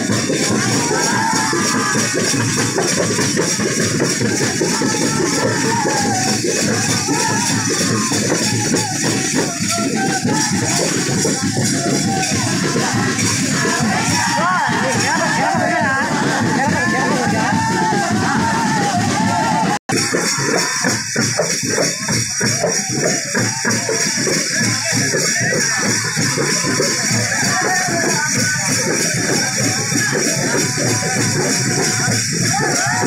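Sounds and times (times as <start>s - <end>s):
hand drums beating: 0.0s - 33.0s.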